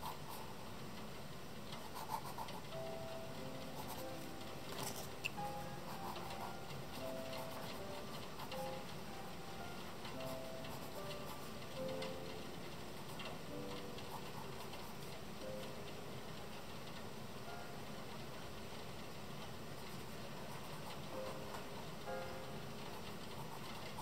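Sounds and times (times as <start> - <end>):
soft background music: 0.1 - 24.0.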